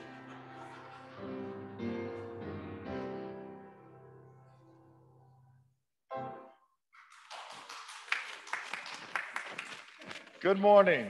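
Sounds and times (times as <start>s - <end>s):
piano music: 0.0s - 6.7s
congregation applauding: 7.0s - 11.0s.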